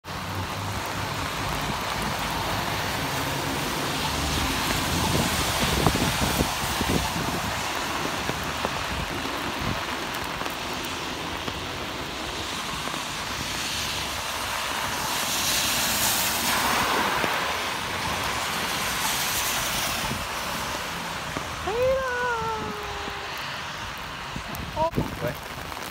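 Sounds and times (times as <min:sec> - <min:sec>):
heavy rain: 0:00.0 - 0:25.9
traffic on a wet road: 0:00.0 - 0:25.9
vehicles passing: 0:00.0 - 0:25.9.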